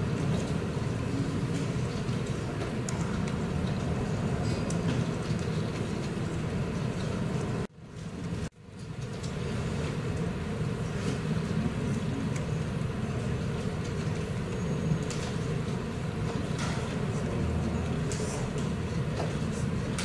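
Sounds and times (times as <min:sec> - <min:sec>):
low rumbling background noise: 0:00.0 - 0:20.0.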